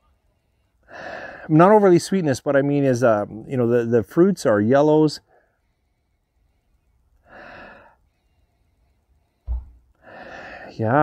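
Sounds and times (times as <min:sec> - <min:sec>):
man sniffing: 0:09.7 - 0:10.7.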